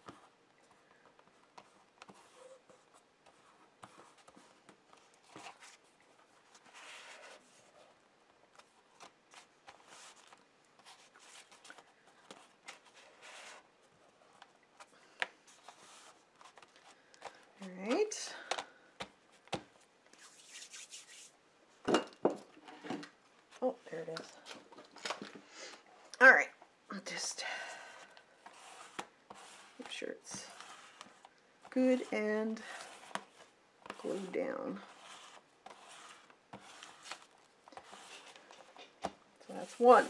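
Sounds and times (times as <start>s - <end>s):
paper rustling on a table: 0.0s - 17.5s, 27.8s - 40.0s.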